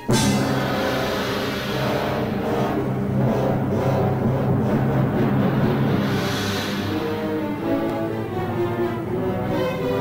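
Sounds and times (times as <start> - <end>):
orchestra playing: 0.0 - 10.0.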